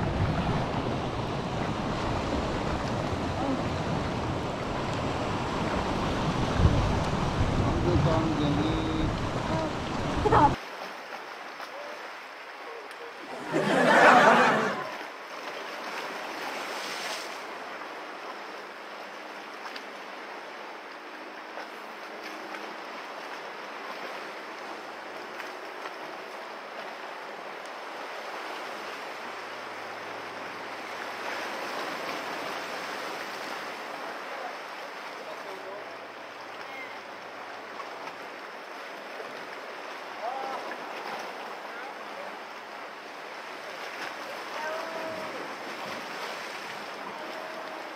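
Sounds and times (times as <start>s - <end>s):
sea surf against rocks: 0.0s - 47.9s.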